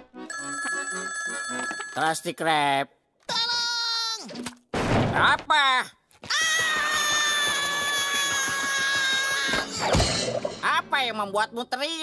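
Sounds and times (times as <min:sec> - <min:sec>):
cartoon character screaming: 0:06.3 - 0:10.0.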